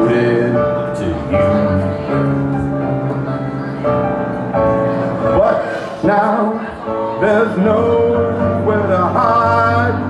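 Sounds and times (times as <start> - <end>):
man singing: 0.0 - 2.1, 5.2 - 10.0
electronic keyboard: 0.0 - 10.0.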